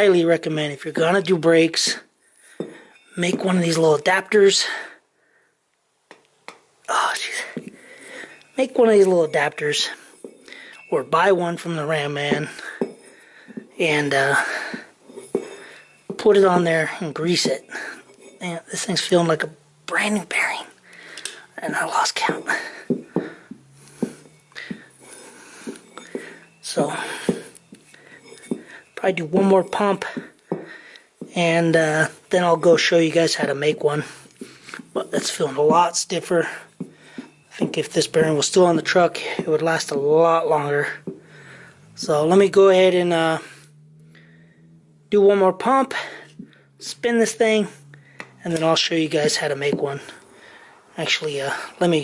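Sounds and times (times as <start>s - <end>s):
wheel bearing clicking and knocking: 22.3s - 31.4s.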